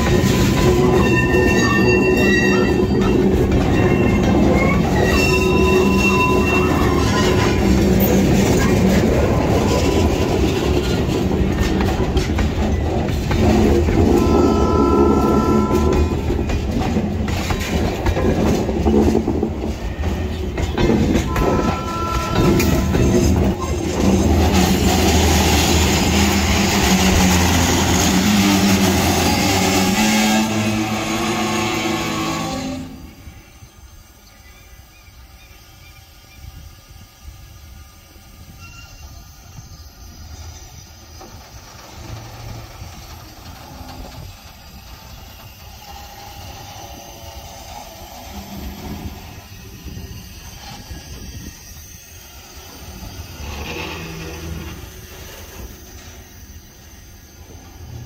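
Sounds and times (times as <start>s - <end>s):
wheels clattering over rails: 0.0s - 32.6s
wheel squeals: 0.0s - 36.6s, 38.4s - 58.0s
diesel locomotive running: 0.0s - 58.0s.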